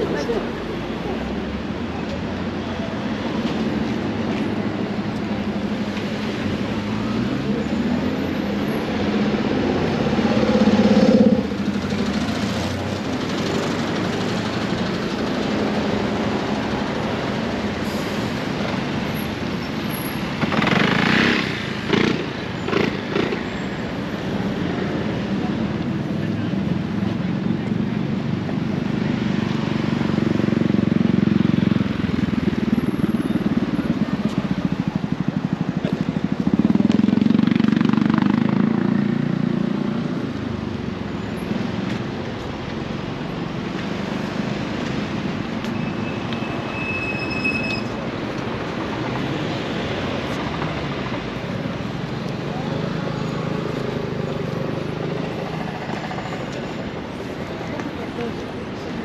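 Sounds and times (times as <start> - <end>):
cars passing: 0.0 - 59.0
traffic rumble: 0.0 - 59.0.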